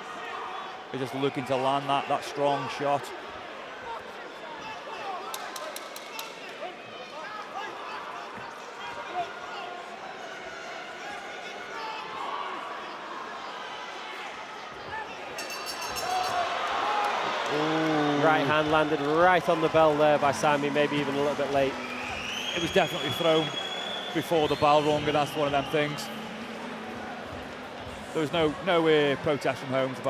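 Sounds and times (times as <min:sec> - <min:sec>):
crowd murmur: 0:08.3 - 0:30.0
high-pitched ringing bell: 0:15.4 - 0:16.5.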